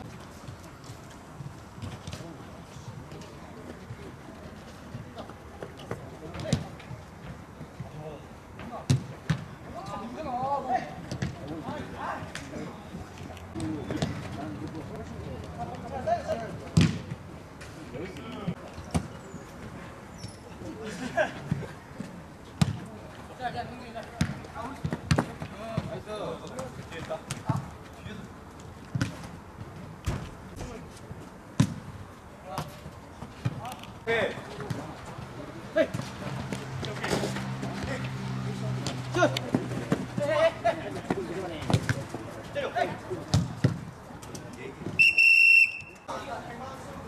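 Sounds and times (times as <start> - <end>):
ball kicked and bouncing: 8.9 - 9.5, 11.1 - 11.4, 16.3 - 17.2, 22.6 - 22.9, 24.2 - 26.0, 28.9 - 30.7, 31.6 - 31.9, 41.0 - 42.2, 43.3 - 43.9
ball being kicked: 43.3 - 43.9
referee's whistle blast: 45.0 - 46.0.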